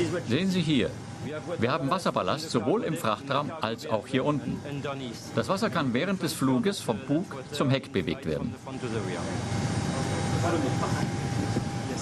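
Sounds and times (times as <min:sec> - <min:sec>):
faint steady whine: 0:00.0 - 0:12.0
faint voices: 0:01.0 - 0:12.0
aircraft cabin rushing noise: 0:10.5 - 0:12.0.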